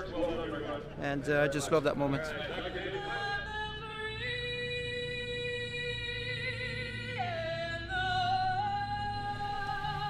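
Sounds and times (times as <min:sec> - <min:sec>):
person singing a long note: 0:03.0 - 0:10.0.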